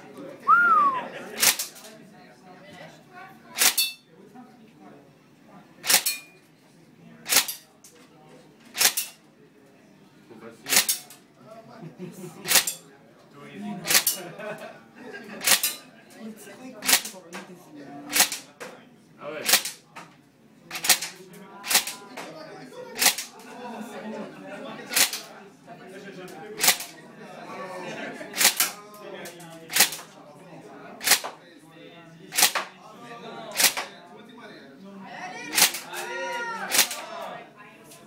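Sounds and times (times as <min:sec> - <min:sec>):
airsoft rifle shots: 0:03.6 - 0:03.9, 0:05.8 - 0:06.2, 0:07.3 - 0:07.6, 0:08.8 - 0:09.1, 0:10.7 - 0:11.0, 0:15.4 - 0:15.7, 0:16.8 - 0:17.2, 0:18.1 - 0:18.5, 0:19.4 - 0:19.8, 0:20.7 - 0:22.0, 0:23.0 - 0:23.3, 0:24.9 - 0:25.2, 0:26.6 - 0:26.9, 0:28.4 - 0:28.8, 0:29.7 - 0:30.1, 0:31.0 - 0:31.4, 0:32.3 - 0:32.7, 0:33.6 - 0:33.9, 0:35.5 - 0:35.9, 0:36.7 - 0:37.0.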